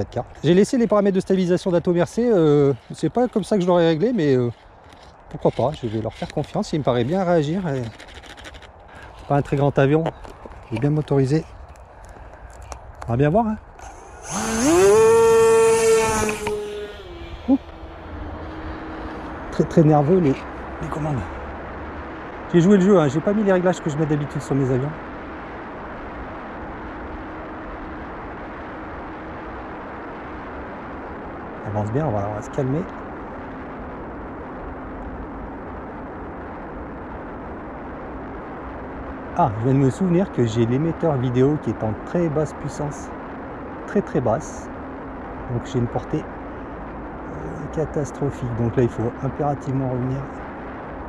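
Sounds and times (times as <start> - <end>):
wind buffeting microphone: 0.0 - 23.6
model plane electric motors whining: 13.8 - 20.5.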